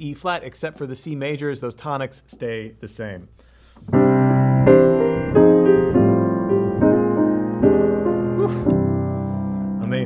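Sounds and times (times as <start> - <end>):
grand piano jazz chords: 3.8 - 10.0.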